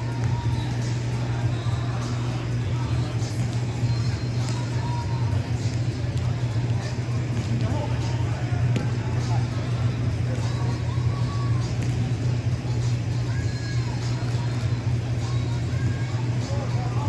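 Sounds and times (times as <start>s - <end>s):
distant echoing voices: 0.0s - 17.0s
steady low hum: 0.0s - 17.0s.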